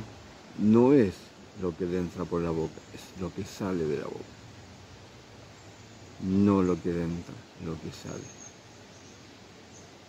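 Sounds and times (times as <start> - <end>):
man speaking: 0.6 - 4.3, 6.2 - 8.3.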